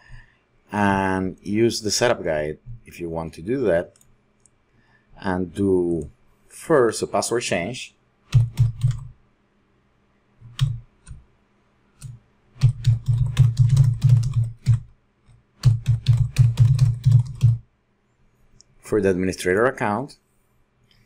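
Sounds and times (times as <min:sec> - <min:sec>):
typing on computer keyboard: 0:08.3 - 0:09.1, 0:12.0 - 0:14.9, 0:15.6 - 0:17.6.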